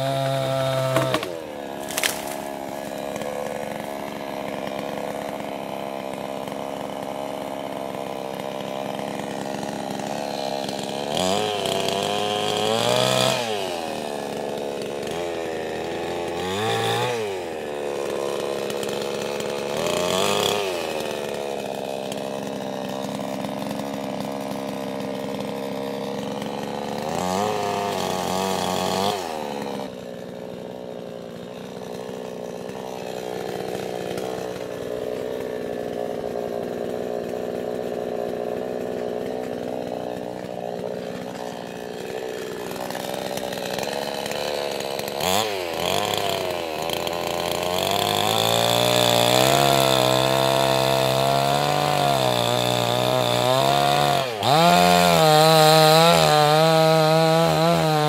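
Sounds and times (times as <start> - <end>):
chainsaw revving: 0.0 - 58.0.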